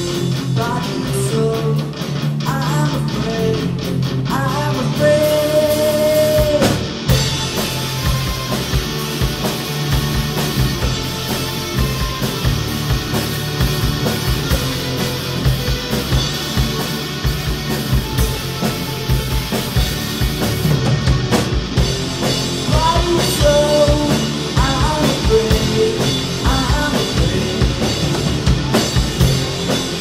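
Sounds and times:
person singing: 0:00.0 - 0:06.8, 0:22.7 - 0:28.1
bass guitar: 0:00.0 - 0:30.0
electric guitars: 0:00.0 - 0:30.0
drum kit beat: 0:05.0 - 0:30.0.

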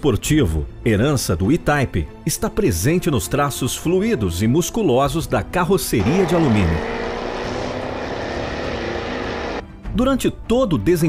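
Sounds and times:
sports car engine drone: 0:06.0 - 0:09.6.

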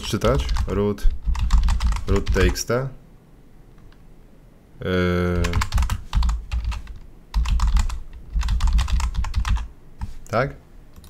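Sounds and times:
keyboard typing: 0:00.0 - 0:02.6, 0:05.3 - 0:10.4.

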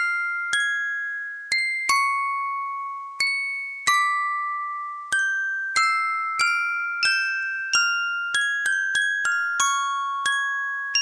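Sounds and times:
music box melody: 0:00.0 - 0:11.0.

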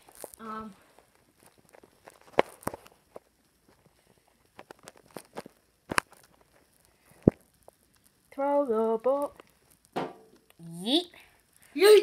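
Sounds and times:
heavy thump: 0:10.0 - 0:10.3.

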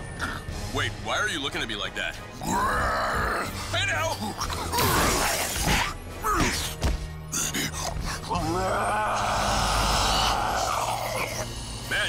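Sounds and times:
raspy monster roar: 0:08.6 - 0:11.6.

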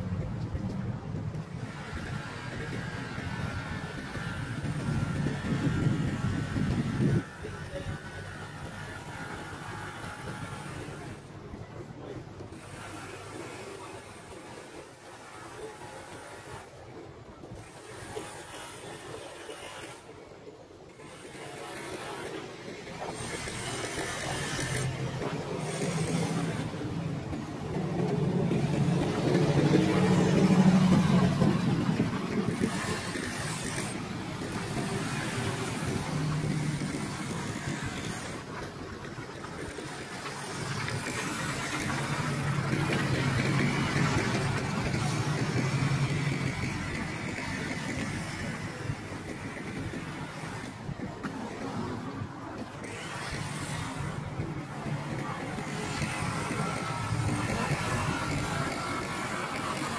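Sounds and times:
vehicles passing: 0:21.0 - 0:59.9.

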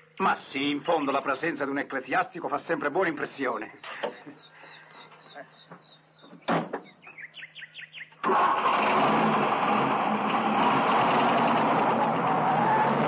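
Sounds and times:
bird chirps: 0:03.7 - 0:08.2
car engine starting and running: 0:08.2 - 0:13.0.

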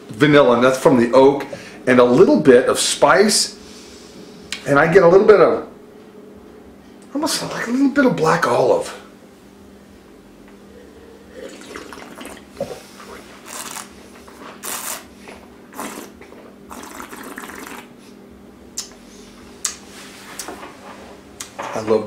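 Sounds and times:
wine slurping in mouth: 0:11.2 - 0:18.0.

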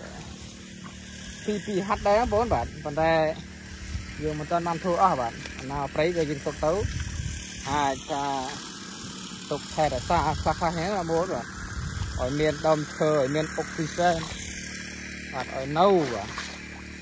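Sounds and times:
man talking: 0:01.4 - 0:03.5, 0:04.1 - 0:07.0, 0:07.6 - 0:08.6, 0:09.5 - 0:11.5, 0:12.2 - 0:14.4, 0:15.3 - 0:16.5.

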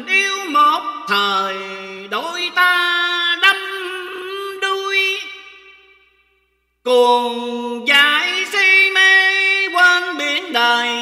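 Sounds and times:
person singing a ballad: 0:00.0 - 0:05.9, 0:06.7 - 0:11.0.

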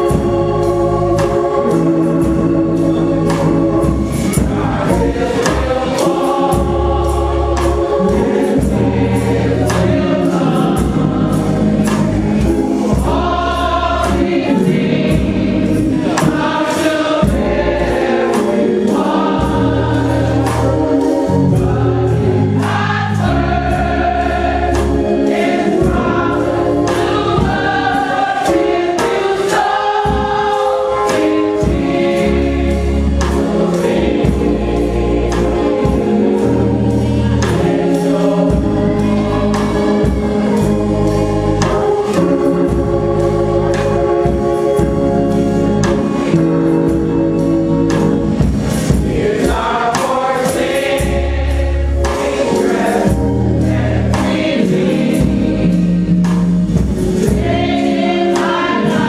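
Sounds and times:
gospel choir singing: 0:00.0 - 0:59.0
instrumental accompaniment with bass: 0:00.0 - 0:59.0.

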